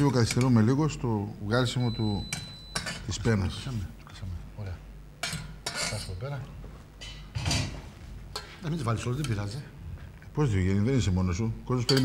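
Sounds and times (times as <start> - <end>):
metal tongs scraping steel pot: 5.2 - 6.2.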